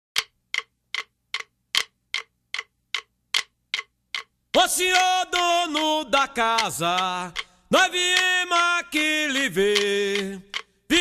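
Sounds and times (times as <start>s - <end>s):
sharp unpitched clicks: 0.2s - 11.0s.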